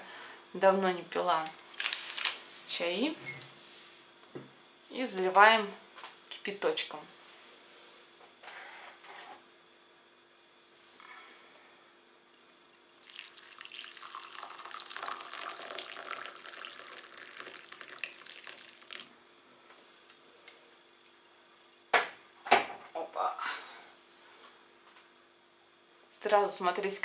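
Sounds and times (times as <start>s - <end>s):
water pouring into a cup: 13.0s - 19.6s.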